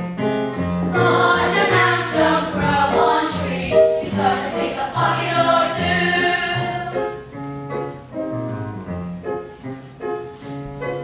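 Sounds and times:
instrumental accompaniment: 0:00.0 - 0:11.0
group of voices singing: 0:00.9 - 0:07.2.

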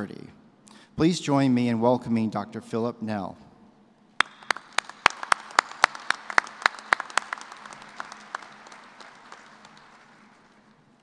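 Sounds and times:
loud sharp claps close by: 0:04.2 - 0:10.8
audience applause: 0:04.2 - 0:11.0.

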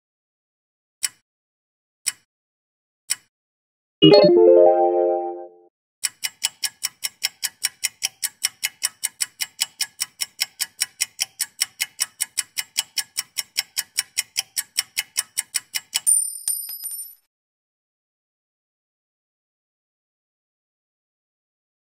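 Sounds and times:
musical chord: 0:04.0 - 0:05.6
clock ticking: 0:06.0 - 0:16.0.

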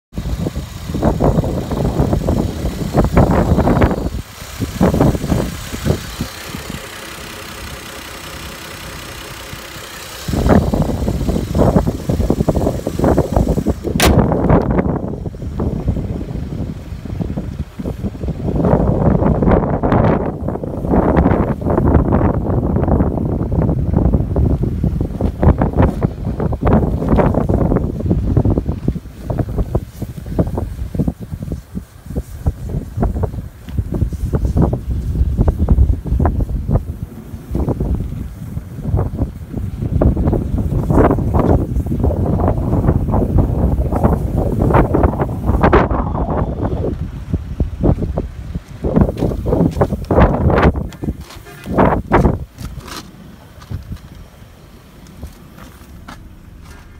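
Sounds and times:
car engine idling: 0:00.1 - 0:56.9
wind rumbling on microphone: 0:00.1 - 0:56.9.

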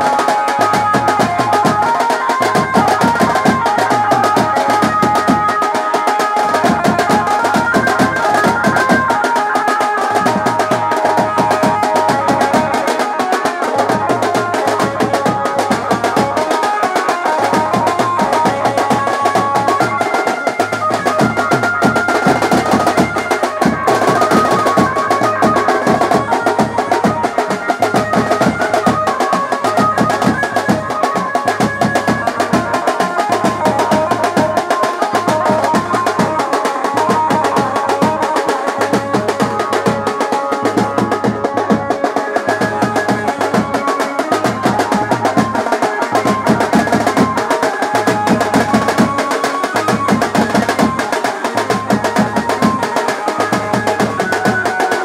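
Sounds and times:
held melody line: 0:00.0 - 0:55.0
snare drums played with sticks: 0:00.0 - 0:55.0.

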